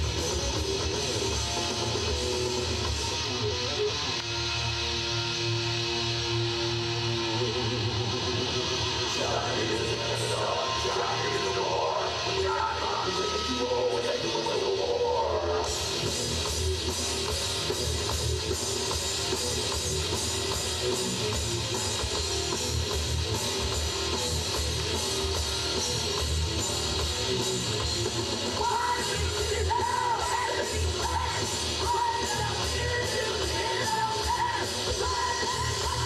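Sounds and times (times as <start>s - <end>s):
bass and drum kit: 0.0s - 36.0s
distorted electric guitar: 0.0s - 36.0s.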